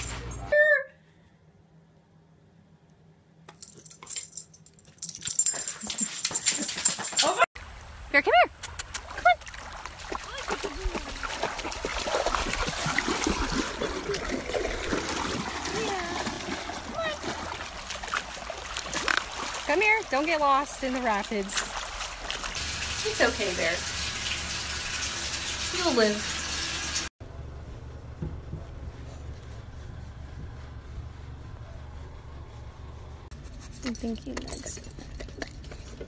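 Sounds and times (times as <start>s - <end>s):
dog splashing through water: 8.9s - 23.8s.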